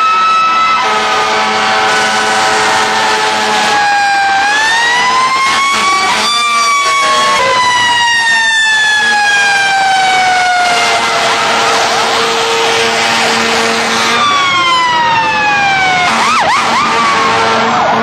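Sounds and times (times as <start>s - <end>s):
fire truck sirens wailing: 0.0s - 18.0s.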